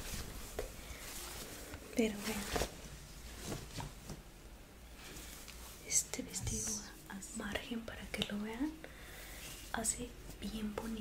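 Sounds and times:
woman speaking softly: 0:01.9 - 0:02.6, 0:05.8 - 0:08.8, 0:09.7 - 0:11.0.

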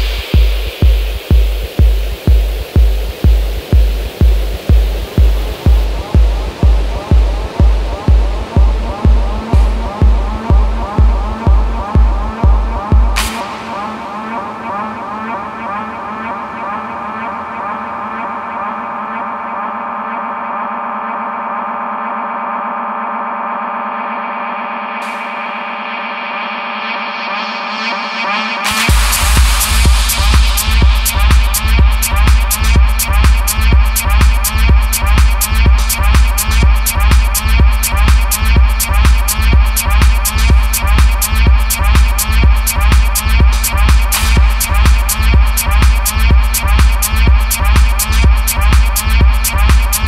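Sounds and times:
techno kick drum: 0:00.0 - 0:13.9, 0:28.6 - 0:50.0.

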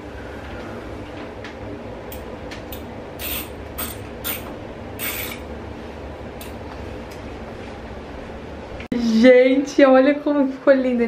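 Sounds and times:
steady low hum: 0:00.0 - 0:11.0
screwdriver scraping screw: 0:05.0 - 0:05.4.

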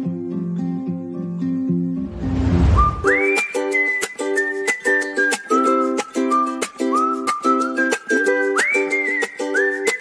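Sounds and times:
low rumble: 0:02.0 - 0:03.2
whoosh transition: 0:02.0 - 0:03.3
whistled melody: 0:02.1 - 0:10.0.

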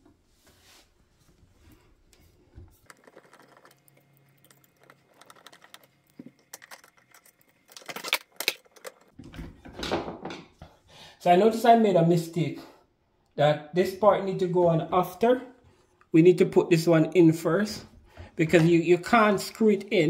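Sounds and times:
tool and parts clicking and rattling: 0:02.8 - 0:10.4.

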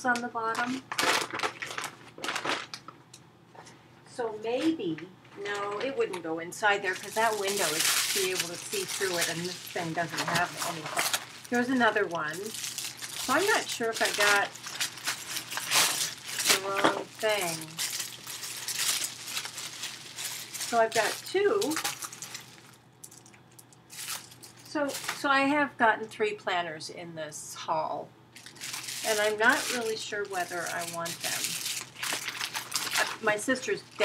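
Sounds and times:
fabric bag rustling and crinkling: 0:00.9 - 0:02.8, 0:06.8 - 0:22.8, 0:23.9 - 0:25.2, 0:28.4 - 0:34.0.

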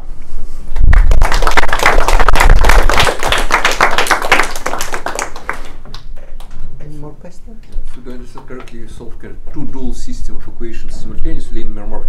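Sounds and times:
audience clapping: 0:00.8 - 0:06.6.

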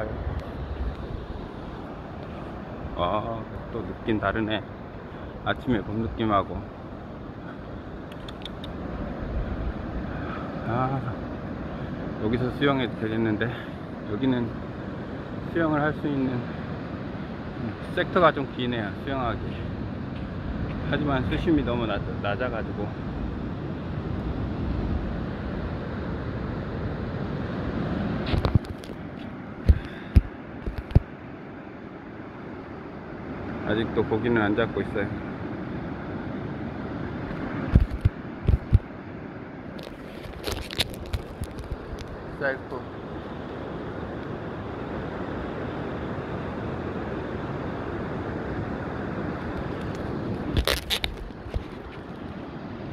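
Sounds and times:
wind rumble on microphone: 0:00.0 - 0:31.2, 0:34.7 - 0:52.9
distant surf: 0:00.0 - 0:52.9
wind buffeting microphone: 0:37.1 - 0:39.0.

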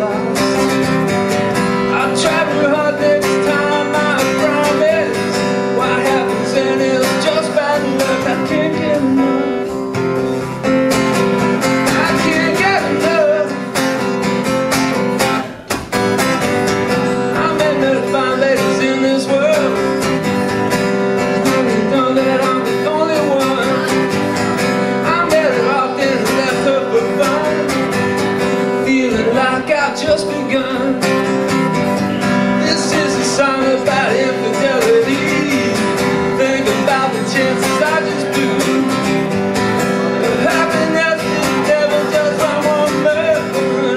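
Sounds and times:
man singing: 0:00.0 - 0:15.7, 0:16.4 - 0:43.9
acoustic guitar strumming: 0:00.0 - 0:43.9.

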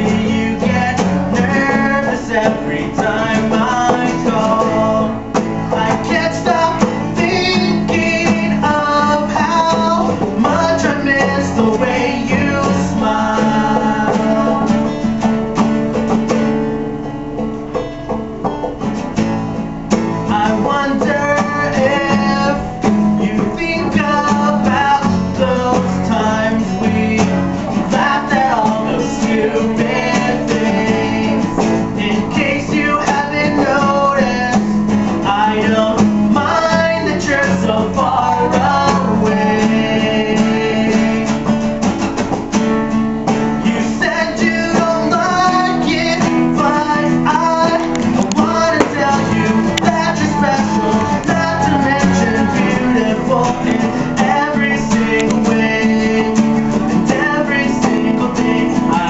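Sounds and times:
man singing: 0:00.0 - 0:15.1, 0:20.2 - 0:41.7, 0:43.5 - 0:59.0
acoustic guitars strumming: 0:00.0 - 0:59.0.

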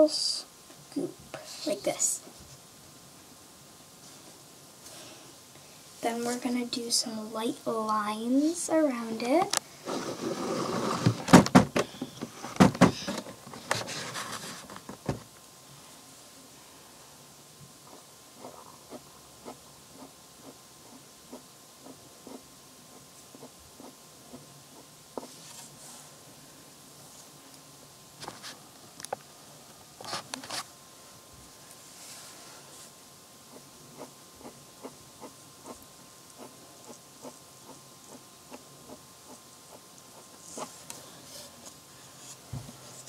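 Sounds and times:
faint background hiss: 0:00.0 - 0:43.0
scratchy rustle: 0:09.8 - 0:11.3, 0:13.7 - 0:14.8.

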